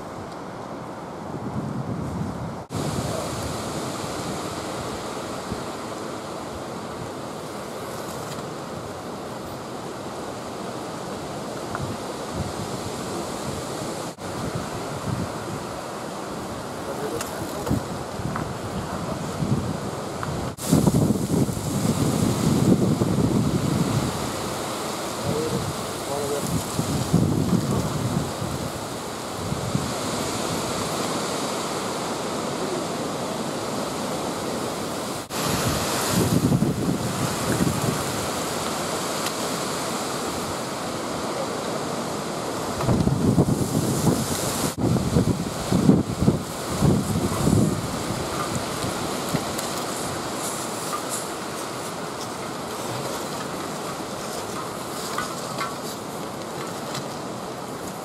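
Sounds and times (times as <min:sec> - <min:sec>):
wind on microphone: 0:01.2 - 0:08.1, 0:11.5 - 0:56.4.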